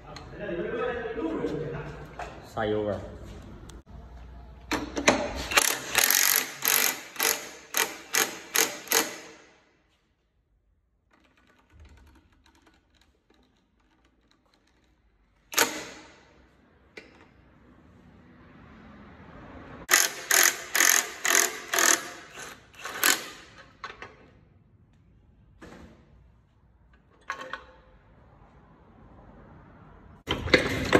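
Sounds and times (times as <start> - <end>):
impact wrench hammering: 4.7 - 9.6, 15.5 - 16.4, 19.9 - 23.8.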